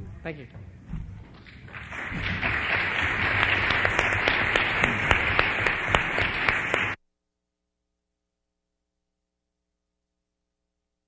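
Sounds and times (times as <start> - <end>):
audience applauding: 1.4 - 7.0.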